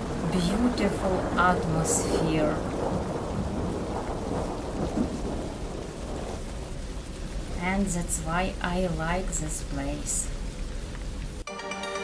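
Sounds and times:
low uneven outdoor rumble: 0:00.0 - 0:11.4.

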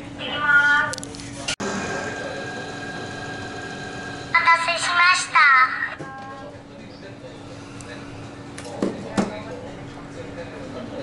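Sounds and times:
mechanical whir with high whine: 0:01.4 - 0:04.7.

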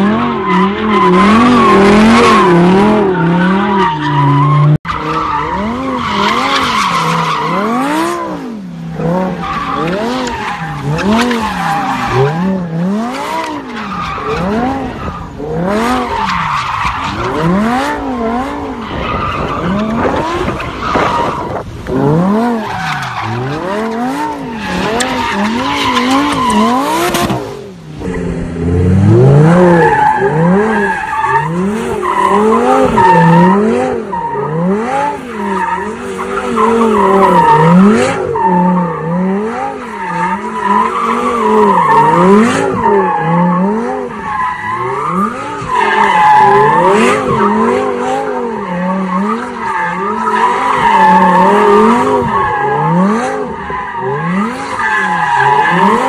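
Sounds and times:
car engine revving: 0:00.0 - 0:56.0.

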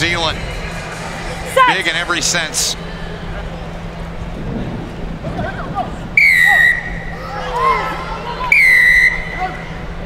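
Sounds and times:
referee's whistle blasts: 0:06.2 - 0:07.1, 0:08.5 - 0:09.4.

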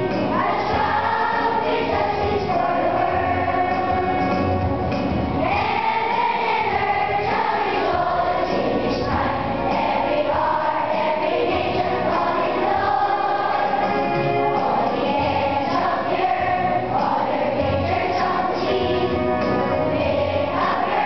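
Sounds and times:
choir singing a hymn: 0:00.0 - 0:04.7, 0:05.3 - 0:21.0.

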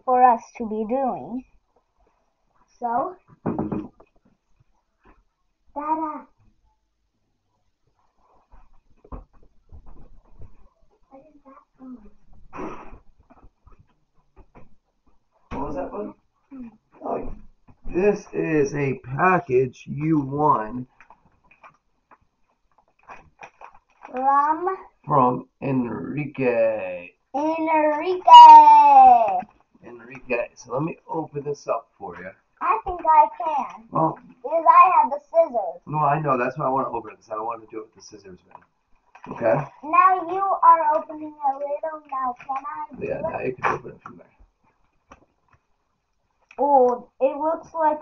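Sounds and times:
child calling out: 0:24.1 - 0:24.8, 0:27.4 - 0:29.4.

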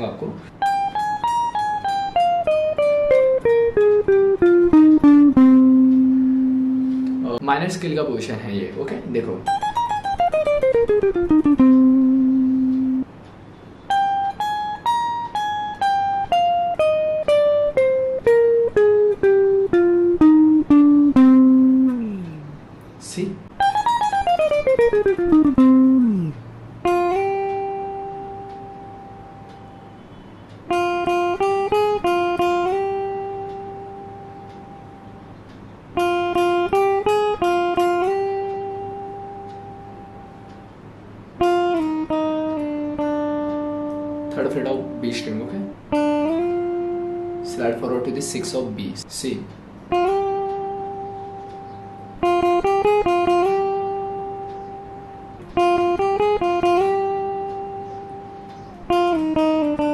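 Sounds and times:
electric guitar notes: 0:00.0 - 0:07.5, 0:09.3 - 0:59.9.

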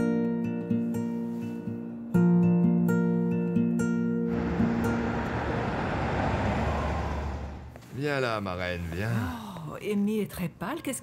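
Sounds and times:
car driving past: 0:04.3 - 0:08.0.

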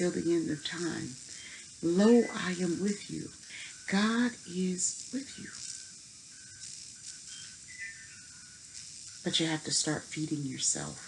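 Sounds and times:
faint background hiss: 0:00.0 - 0:11.0
faint high whistle-like tones: 0:00.0 - 0:11.0.

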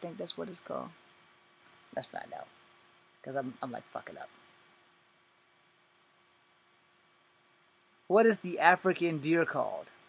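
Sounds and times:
low steady hiss and hum: 0:00.0 - 0:10.0.

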